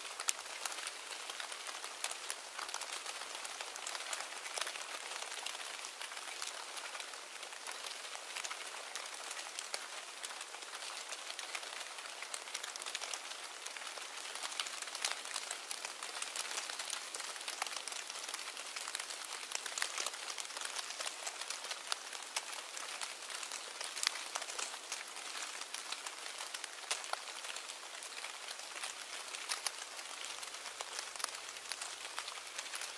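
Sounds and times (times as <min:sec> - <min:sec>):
crackling hiss: 0:00.0 - 0:32.9.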